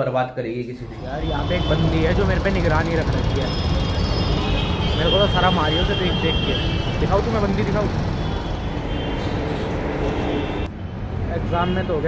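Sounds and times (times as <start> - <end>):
metro train running: 0.8 - 4.7.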